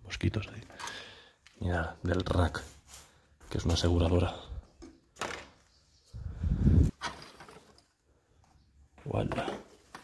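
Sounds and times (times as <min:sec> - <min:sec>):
rummaging through plastic toys: 0:06.9 - 0:10.0.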